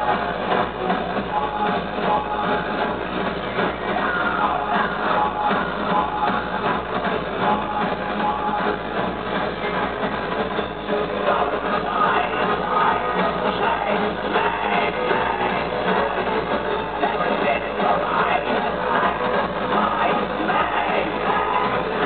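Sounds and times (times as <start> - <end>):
loud electro-industrial music: 0.0 - 22.0.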